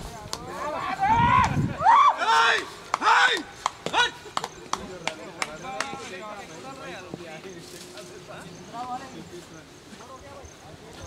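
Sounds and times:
players shouting calls: 0:00.4 - 0:07.2.

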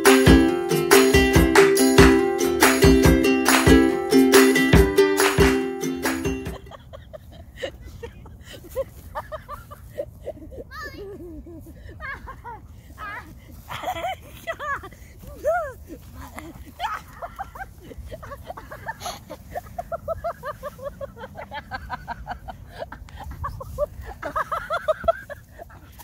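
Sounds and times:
boy laughing: 0:06.2 - 0:26.0.

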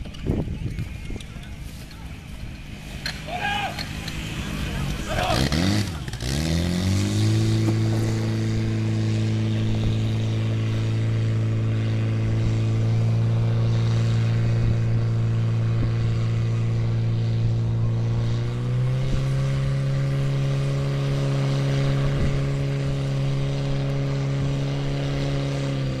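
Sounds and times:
fire pump engine running: 0:00.0 - 0:26.0.

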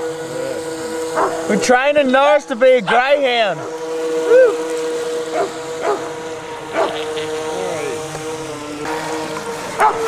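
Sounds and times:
model speedboat motor running: 0:00.0 - 0:10.0.

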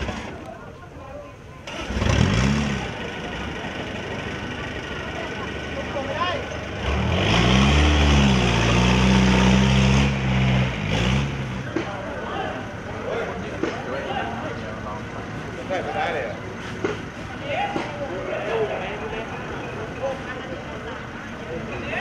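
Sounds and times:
truck engine revving: 0:01.6 - 0:13.6.

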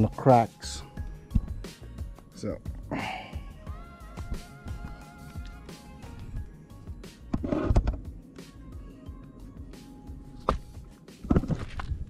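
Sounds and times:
quiet background music: 0:00.0 - 0:12.0
camera handling knocks and rumbling: 0:07.3 - 0:08.1, 0:10.4 - 0:12.0.

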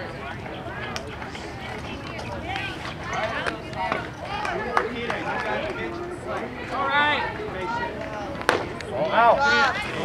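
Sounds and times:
spectators' voices: 0:00.0 - 0:10.0.

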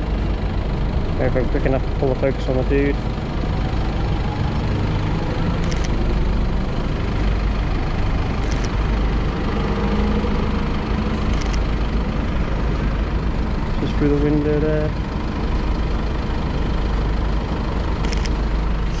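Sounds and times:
vehicle engines rumbling: 0:00.0 - 0:19.0.

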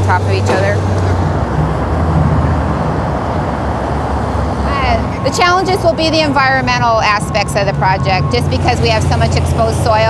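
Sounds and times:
construction machinery rumble: 0:00.0 - 0:10.0
freeway traffic: 0:00.0 - 0:10.0.

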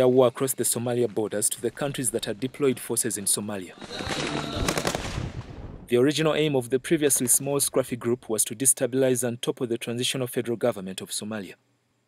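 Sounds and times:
faint voices: 0:01.0 - 0:05.0
automatic gunfire burst: 0:03.8 - 0:05.5.

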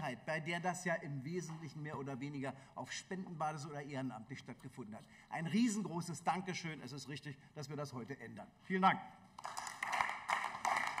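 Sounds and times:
applause: 0:09.4 - 0:11.0.

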